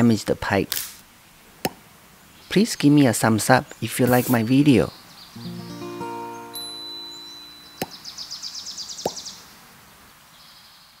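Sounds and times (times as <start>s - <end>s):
high-pitched chirring trill: 5.4s - 8.0s
music chord: 5.4s - 8.0s.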